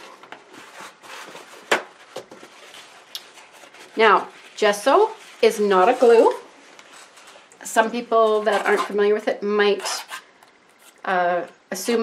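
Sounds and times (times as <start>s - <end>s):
paper towel rustling: 0.0s - 9.1s
palette knife scraping: 8.2s - 9.0s, 9.6s - 11.1s.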